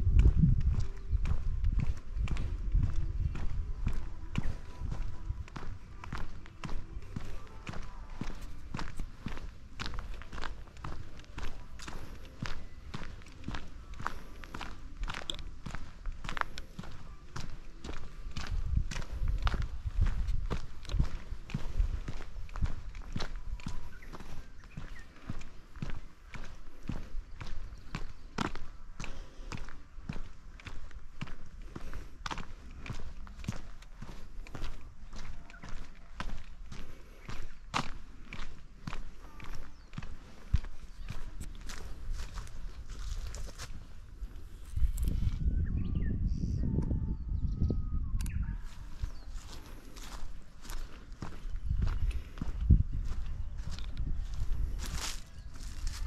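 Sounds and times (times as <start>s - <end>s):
footsteps on paved path: 0.0s - 45.7s, 48.2s - 56.0s.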